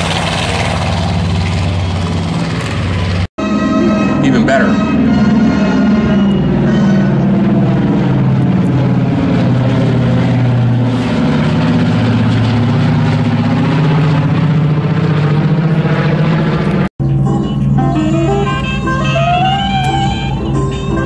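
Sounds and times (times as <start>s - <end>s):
piston aircraft engines: 0.0s - 21.0s.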